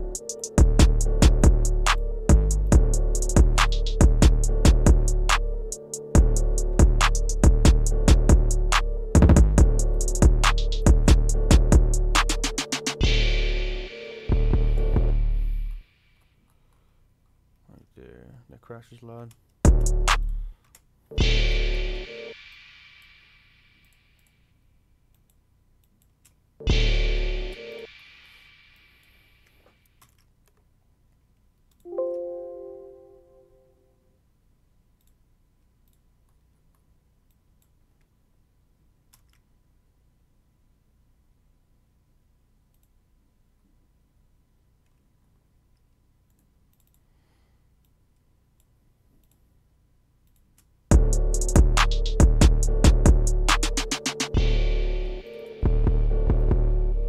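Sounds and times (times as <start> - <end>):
trap beat: 0.0 - 15.8, 19.7 - 20.5, 50.9 - 57.0
deep bass hit: 0.6 - 5.4, 6.2 - 12.2, 50.9 - 53.8, 54.4 - 57.0
faint mouse clicks: 35.0 - 38.1, 39.1 - 39.5, 42.7 - 43.0, 45.7 - 47.1, 47.8 - 49.5
mouse clicks: 45.8 - 47.1.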